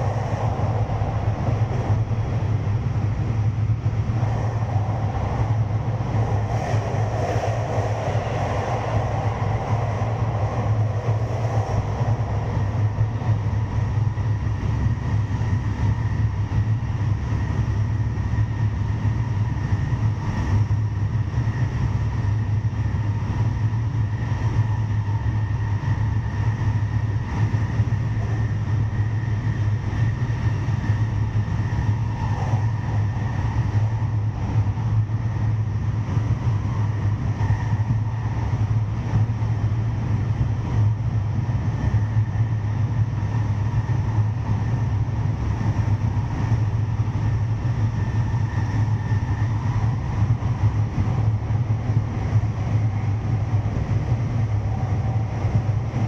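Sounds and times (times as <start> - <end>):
faint steady whine: 0.0 - 56.0
train wheels rumbling on rail: 0.0 - 56.0.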